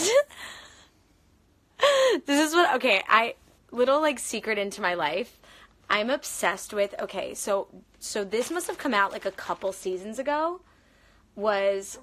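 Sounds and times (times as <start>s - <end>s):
woman speaking: 2.2s - 10.7s, 11.4s - 12.0s.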